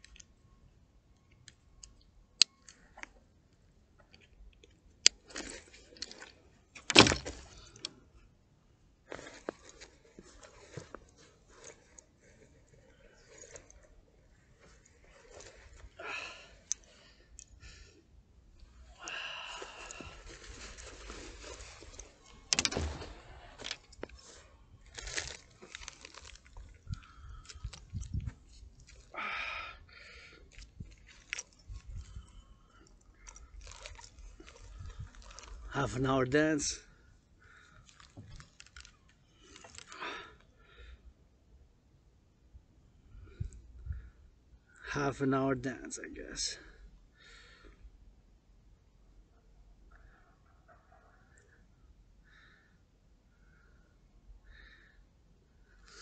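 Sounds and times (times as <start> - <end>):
coat fabric rustling: 19.6 - 26.6.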